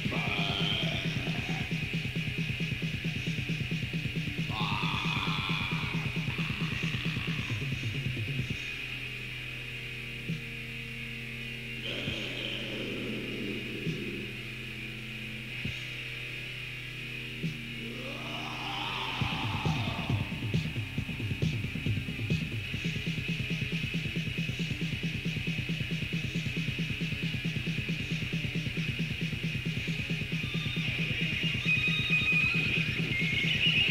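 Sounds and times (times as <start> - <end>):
harsh shrieked vocals: 0.0 - 1.9, 4.5 - 8.1, 11.8 - 14.6, 17.8 - 21.4
distorted guitar: 0.0 - 33.9.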